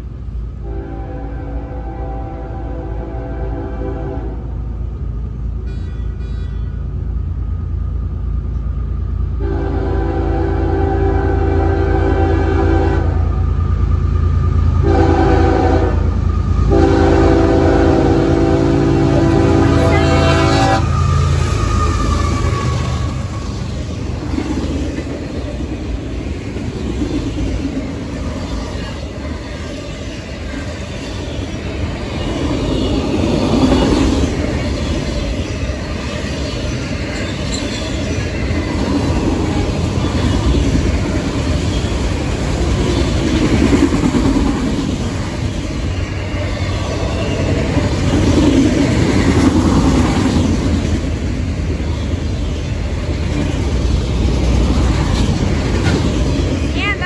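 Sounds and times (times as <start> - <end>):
locomotive engine rumble: 0.0 - 57.0
train wheels rumbling on rail: 0.0 - 57.0
locomotive air horn blasts: 0.6 - 4.5, 9.4 - 13.3, 14.8 - 16.1, 16.7 - 21.1.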